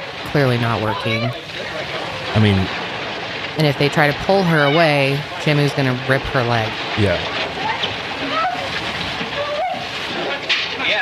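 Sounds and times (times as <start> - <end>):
water churning and splashing: 0.0 - 11.0
faint voices: 0.3 - 2.8, 3.6 - 11.0.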